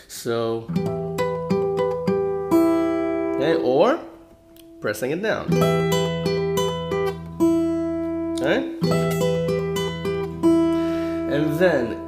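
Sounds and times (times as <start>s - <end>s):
acoustic guitar fingerpicked: 0.6s - 12.0s.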